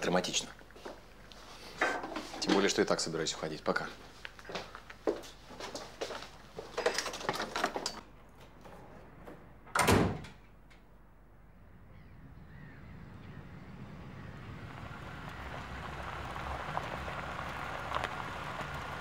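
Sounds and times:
footsteps: 0.6 - 2.7, 3.8 - 7.4
door slamming shut: 9.7 - 10.4
car approaching on dirt track: 11.9 - 19.0.

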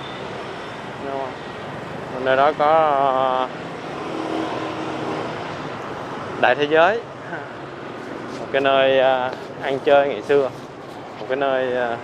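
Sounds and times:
motorbike and scooter traffic: 0.0 - 12.0.

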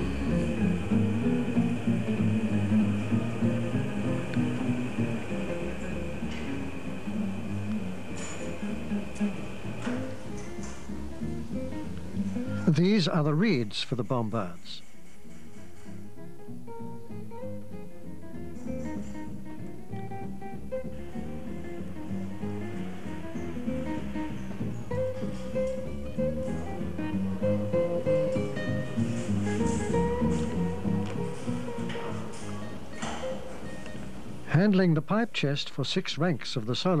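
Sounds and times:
guitar-led background music: 0.0 - 14.1, 15.2 - 35.2.

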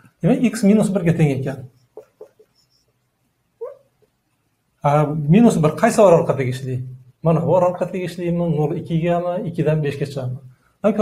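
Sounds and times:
marker squeaking on a whiteboard: 1.7 - 4.2.

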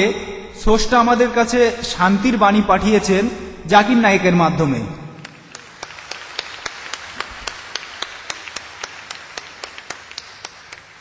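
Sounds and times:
audience applauding: 5.2 - 11.0
sharp evenly timed claps: 5.2 - 11.0.

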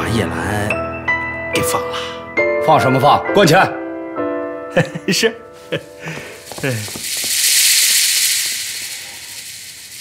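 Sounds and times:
high hissing noise: 6.0 - 10.0.

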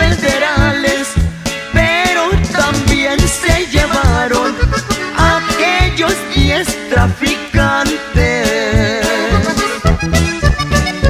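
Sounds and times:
accordion melody: 0.0 - 11.0
bass and drums: 0.0 - 11.0.

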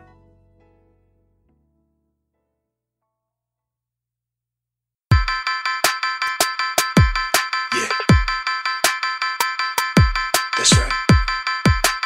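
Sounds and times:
deep kick drum: 8.1 - 8.4, 10.0 - 11.9.

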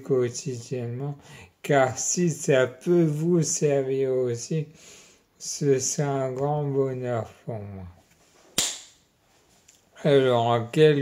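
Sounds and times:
person speaking: 0.0 - 4.8, 5.4 - 8.1, 10.0 - 11.0.

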